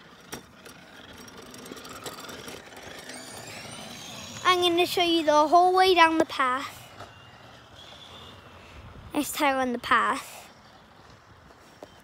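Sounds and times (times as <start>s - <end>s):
electric scooter motor whirring: 0.0s - 12.0s.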